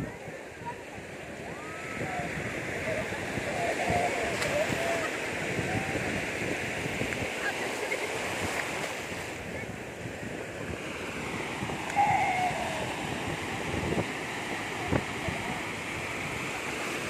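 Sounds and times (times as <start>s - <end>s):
ocean surf breaking: 0.0s - 17.0s.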